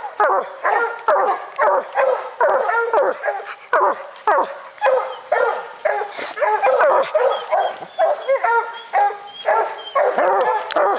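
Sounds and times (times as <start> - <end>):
hounds baying: 0.0 - 10.9.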